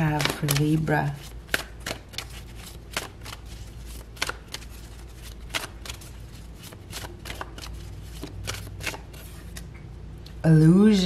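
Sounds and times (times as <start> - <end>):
cards being shuffled: 0.0 - 9.7.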